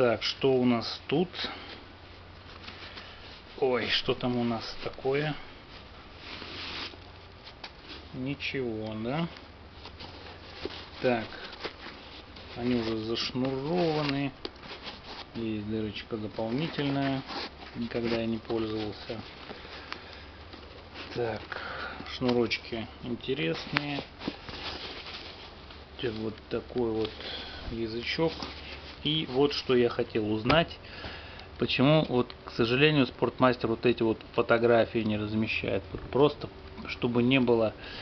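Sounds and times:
low steady hum: 0.0 - 38.0
hands rustling on a sneaker: 1.6 - 31.1
tissue paper crinkling: 2.0 - 30.7.

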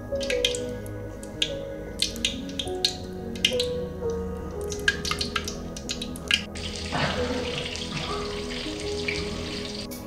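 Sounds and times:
soft background music: 0.0 - 10.0
milk seething and hissing in pan: 4.6 - 10.0.

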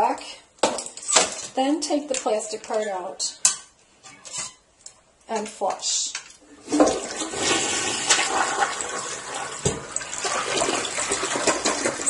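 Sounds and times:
toilet flushing: 6.4 - 12.0.

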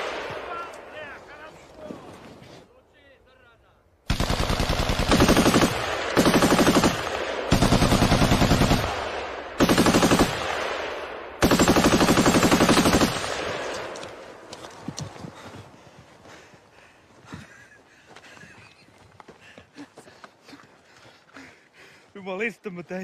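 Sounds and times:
machine gun bursts: 4.1 - 8.9, 9.6 - 10.4, 11.4 - 13.3
faint scattered cracks: 13.2 - 15.1.

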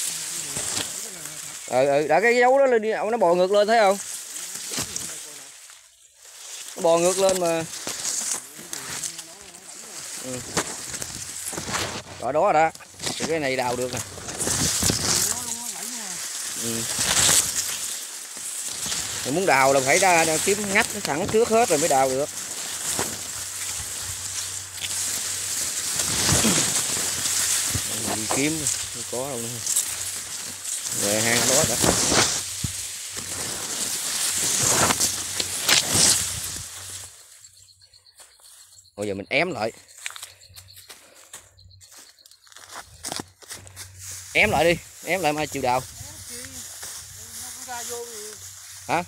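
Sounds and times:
grass rustling against phone: 0.0 - 49.0.

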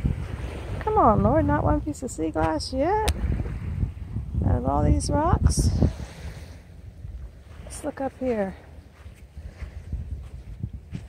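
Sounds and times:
wind on microphone: 0.0 - 11.0
footsteps on sand and pebbles: 7.3 - 11.0.

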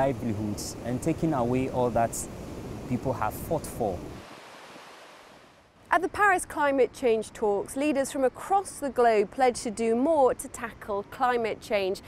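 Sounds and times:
ocean surf on sandy beach: 0.0 - 5.6.

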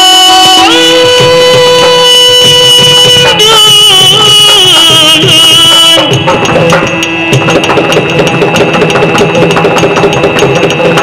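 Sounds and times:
fast dense drumming: 5.2 - 11.0.

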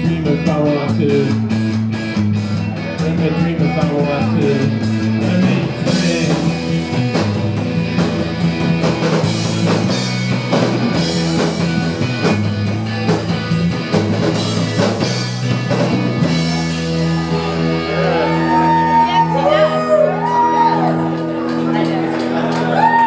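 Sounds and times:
bass guitar: 0.0 - 23.0
drum kit beat: 0.0 - 23.0
electric guitar: 0.0 - 23.0.

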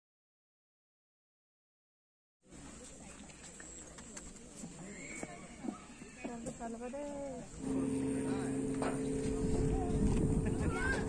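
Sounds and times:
distant people talking: 2.5 - 11.0.

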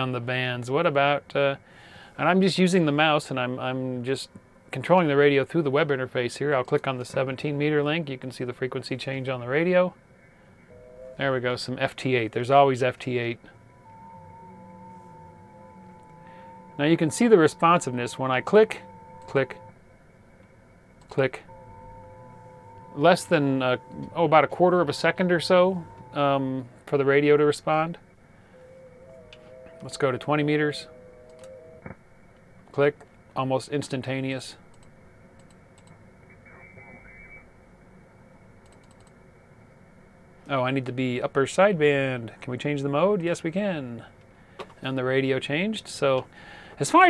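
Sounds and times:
faint receiver hiss: 0.0 - 28.3, 29.2 - 47.0
steady whistling radio tones: 2.2 - 19.8, 21.0 - 32.0, 36.2 - 37.6
garbled radio voice: 22.8 - 28.0, 36.3 - 37.5.

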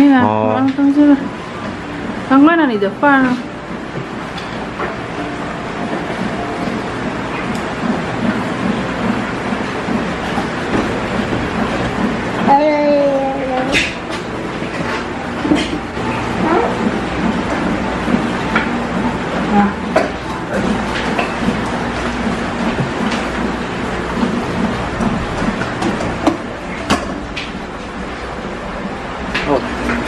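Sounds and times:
steady background noise: 0.0 - 30.0.

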